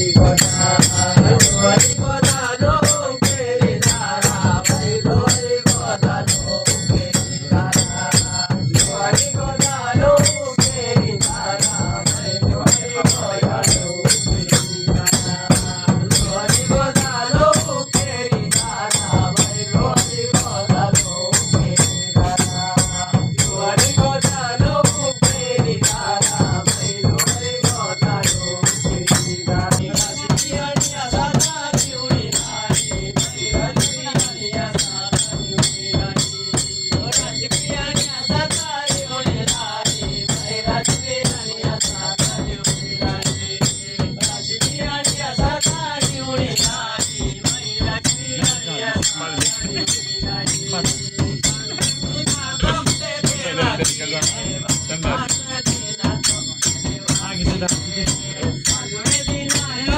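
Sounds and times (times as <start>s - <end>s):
drum beating fast rhythm: 0.0s - 59.9s.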